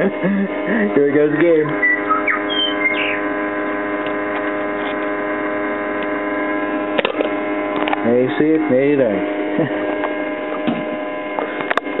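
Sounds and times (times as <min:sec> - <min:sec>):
water pump humming: 0:00.0 - 0:12.0.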